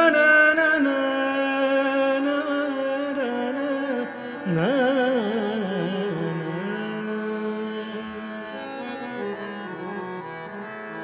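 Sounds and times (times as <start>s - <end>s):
harmonium playing: 0.0s - 11.0s
tanpura drone: 0.0s - 11.0s.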